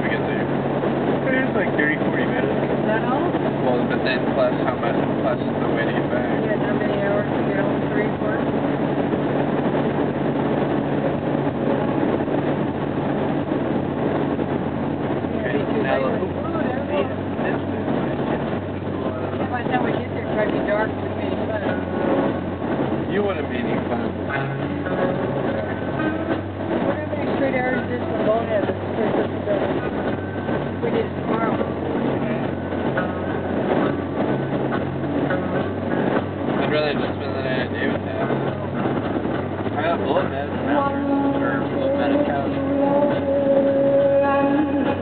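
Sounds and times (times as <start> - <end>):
car engine and tyre drone: 0.0 - 45.0
indistinct talking: 0.0 - 45.0.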